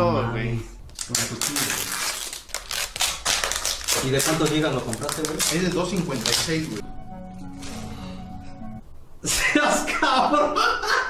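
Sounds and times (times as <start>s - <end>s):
paper and plastic crackling and tearing: 0.9s - 6.8s.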